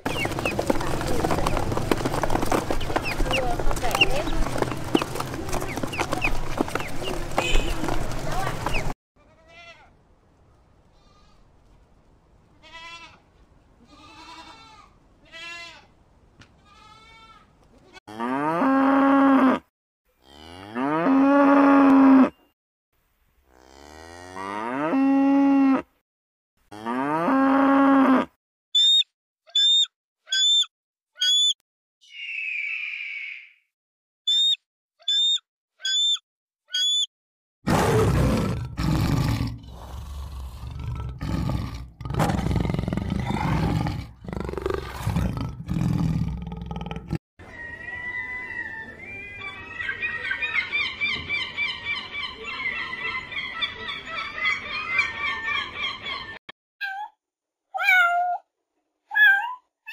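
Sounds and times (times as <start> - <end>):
short high calls: 28.8 - 33.7, 34.3 - 37.1.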